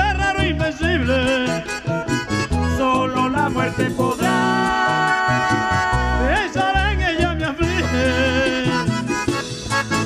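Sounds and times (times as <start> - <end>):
man singing: 0.0 - 9.2
bass and percussion: 0.0 - 10.0
button accordion: 0.0 - 10.0.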